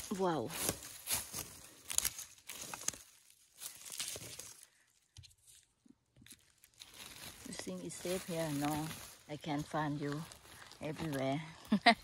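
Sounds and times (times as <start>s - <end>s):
forest litter crackling and rustling: 0.0s - 12.0s.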